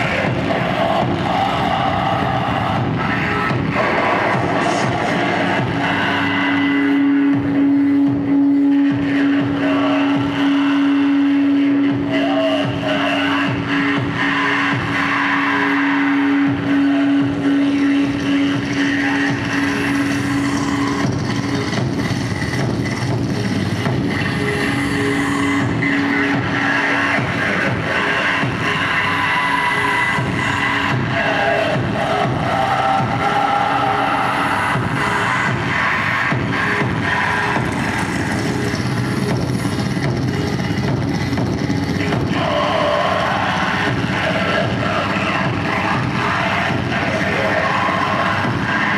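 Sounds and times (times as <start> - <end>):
distorted electronic noise: 0.0 - 48.9
low drone tone: 0.0 - 48.9.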